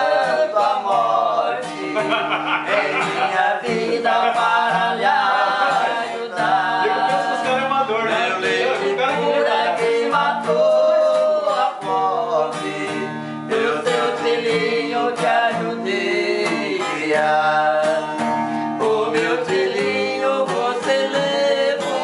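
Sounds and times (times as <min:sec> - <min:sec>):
acoustic guitar strummed: 0:00.0 - 0:22.0
man singing: 0:00.0 - 0:22.0.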